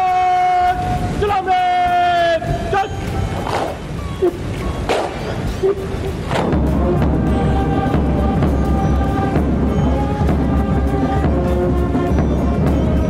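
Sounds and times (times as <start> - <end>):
man shouting word of command: 0.0 - 3.0.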